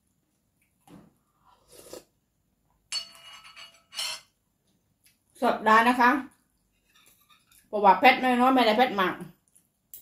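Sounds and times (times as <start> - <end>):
sipping soup from spoon: 1.4 - 2.2
metal spoon clinking on bowl: 2.9 - 4.4
tableware clatter: 2.9 - 4.4.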